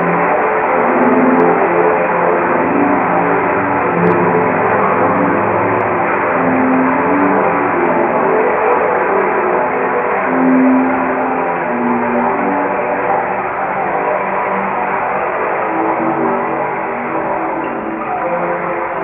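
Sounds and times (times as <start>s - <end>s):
low notes: 0.0s - 19.0s
ringing tube drone: 0.0s - 19.0s.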